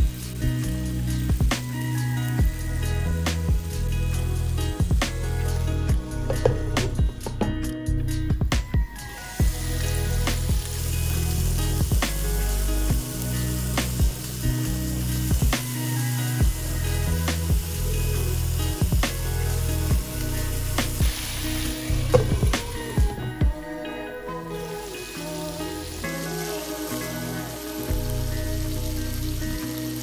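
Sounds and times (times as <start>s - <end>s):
patties sizzling in oil: 0.0s - 7.0s, 8.9s - 23.3s, 24.5s - 30.0s
background music with steady beat: 0.0s - 30.0s.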